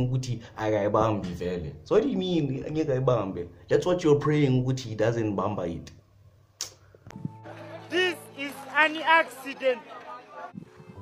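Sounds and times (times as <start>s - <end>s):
music with held tones: 7.1s - 9.0s.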